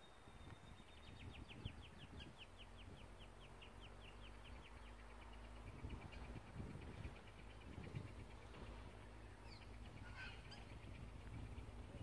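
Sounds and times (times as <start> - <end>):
wind rumble on microphone: 0.0 - 12.0
bird trill: 9.4 - 11.1.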